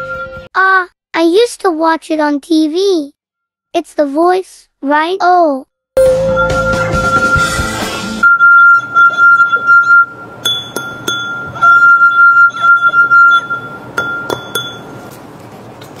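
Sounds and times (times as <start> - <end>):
glassy pings: 8.2 - 15.1
singing wine glass ringing tone: 8.3 - 15.1.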